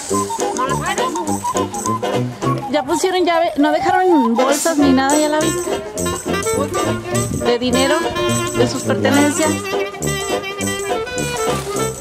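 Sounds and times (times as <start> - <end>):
voices: 0.0 - 10.2
background music with bouncing bass: 0.0 - 12.0.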